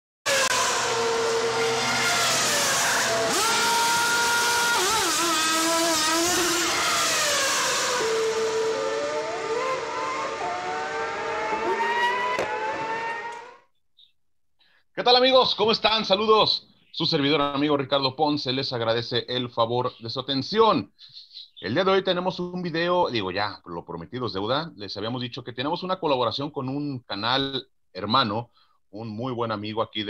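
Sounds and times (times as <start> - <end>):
racing car engines revving: 0.3 - 13.6.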